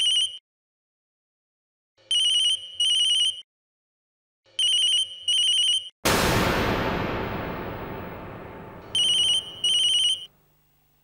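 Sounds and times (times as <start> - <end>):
mobile phone ringtone trilling: 2.1 - 3.4, 4.6 - 5.9, 9.3 - 10.3
rush of noise: 6.1 - 9.8.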